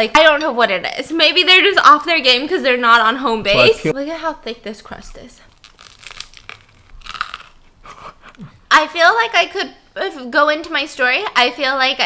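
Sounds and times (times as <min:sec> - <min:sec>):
chewing crunchy pizza crust: 0:05.5 - 0:08.6.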